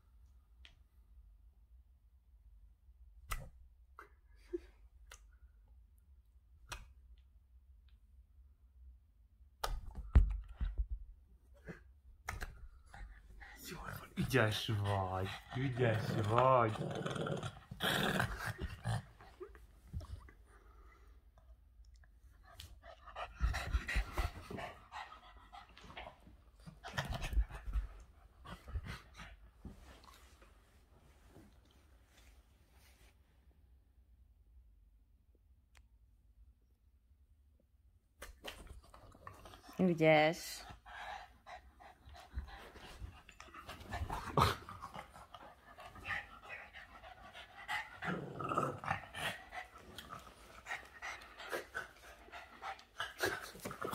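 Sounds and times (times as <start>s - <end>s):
dog panting hard: 12.9s - 16.5s, 22.6s - 29.4s, 40.7s - 48.1s, 49.0s - 53.6s.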